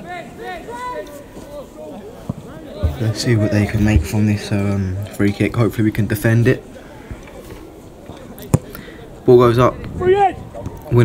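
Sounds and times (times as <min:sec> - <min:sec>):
faint outdoor background noise: 0:00.0 - 0:11.0
boot kicking football: 0:02.3 - 0:04.1.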